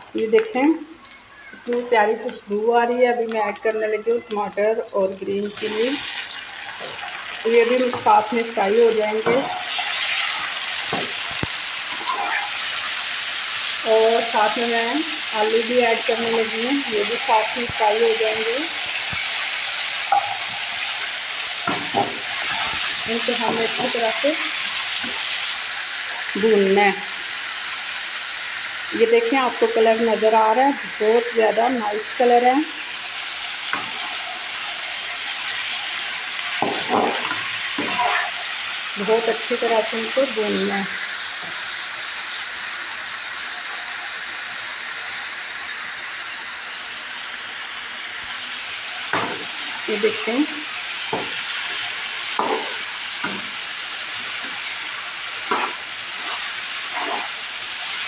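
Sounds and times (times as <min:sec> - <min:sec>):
vegetables sizzling in oil: 0:00.0 - 0:58.0
metal spatula scraping pan: 0:09.1 - 0:11.2, 0:11.9 - 0:12.9, 0:36.6 - 0:38.4, 0:55.4 - 0:57.4.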